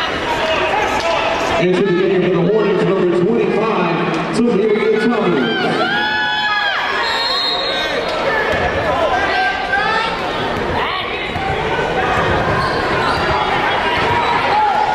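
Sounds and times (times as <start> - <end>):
hum of crowd voices: 0.0 - 14.9
sneakers squeaking on court: 10.4 - 14.4.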